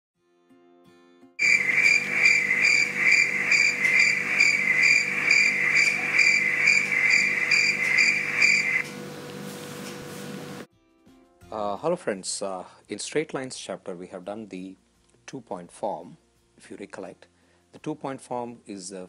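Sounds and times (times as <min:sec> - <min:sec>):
crickets chirping: 0:01.4 - 0:08.9.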